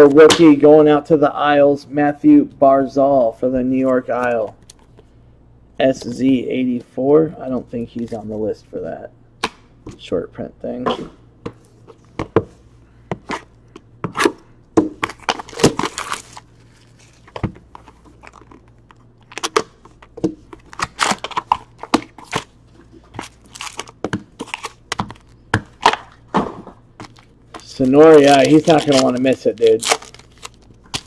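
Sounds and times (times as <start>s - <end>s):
card wrappers crinkling and ripping: 15.0s - 22.5s, 23.1s - 26.0s, 27.0s - 31.0s.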